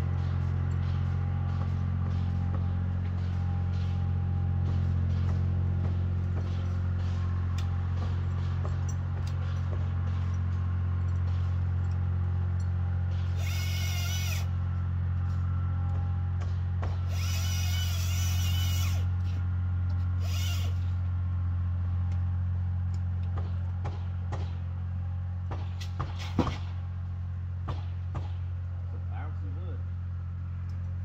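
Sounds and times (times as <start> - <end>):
low engine drone: 0.0 - 31.0
chainsaw cutting: 13.1 - 14.7, 16.5 - 21.1.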